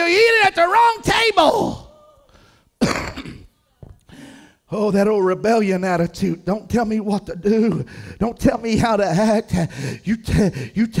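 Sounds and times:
man clearing his throat: 2.8s - 3.5s.

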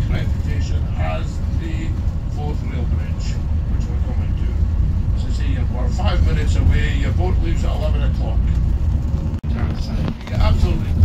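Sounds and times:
voices: 0.0s - 8.8s, 9.5s - 11.0s
bus engine and road rumble: 0.0s - 11.0s.

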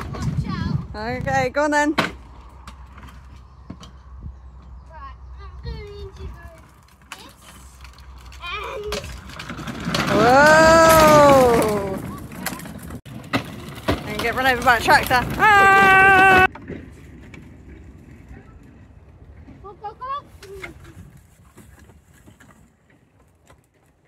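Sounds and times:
toy tractor wheels rolling on tarmac: 4.9s - 24.0s.

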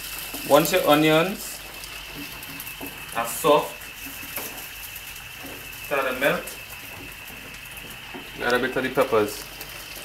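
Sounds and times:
sauce sizzling and bubbling in pan: 0.0s - 10.0s.

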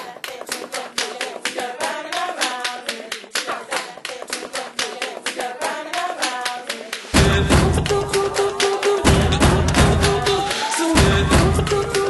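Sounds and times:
rhythmic hand clapping: 0.0s - 12.0s.

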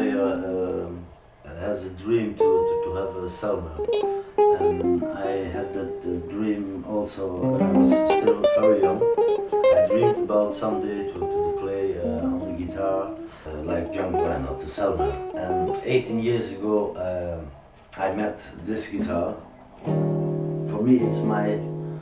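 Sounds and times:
picked acoustic guitar melody: 2.4s - 6.6s, 7.4s - 15.9s, 19.0s - 22.0s
low accompaniment: 2.4s - 16.4s, 18.9s - 22.0s.

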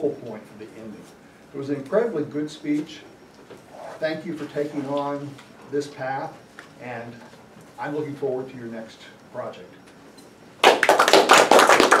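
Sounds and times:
audience applauding: 10.6s - 12.0s.

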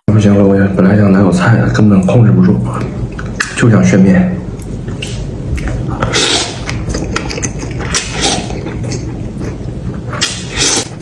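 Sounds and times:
man slurping noodles: 6.0s - 9.1s, 10.1s - 11.0s.

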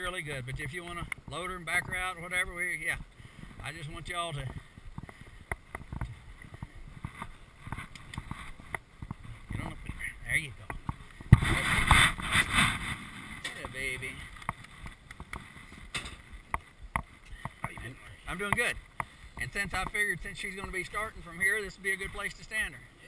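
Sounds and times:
rattling and rubbing: 11.2s - 16.3s.

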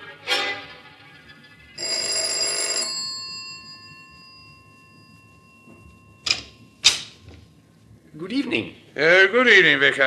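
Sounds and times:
bell-like metallic ring: 2.9s - 6.9s.

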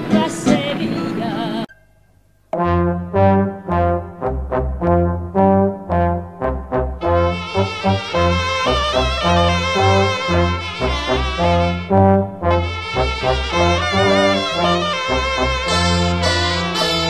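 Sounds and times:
person singing song: 0.0s - 1.7s
brass band music: 2.6s - 17.0s.

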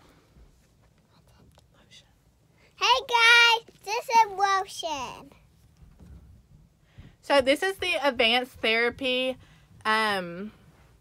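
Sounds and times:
faint whispering: 1.0s - 2.3s.

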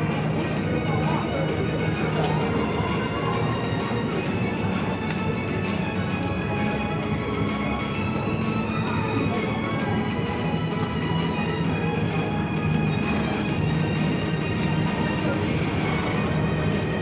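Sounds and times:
music with steady beat: 0.0s - 17.0s.

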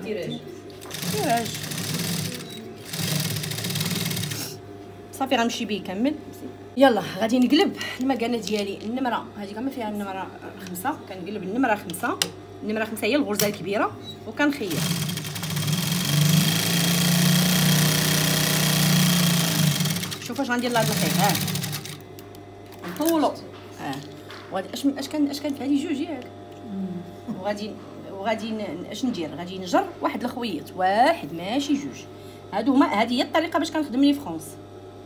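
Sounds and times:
sewing machine stitching: 0.8s - 4.4s, 14.7s - 22.0s.

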